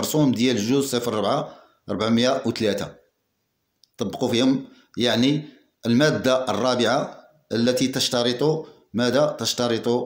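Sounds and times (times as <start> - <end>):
man speaking: 0.0 - 3.1, 3.9 - 10.0.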